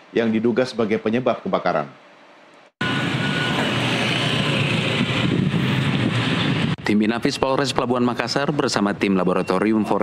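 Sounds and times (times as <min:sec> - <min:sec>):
wind on microphone: 0:03.6 - 0:06.9.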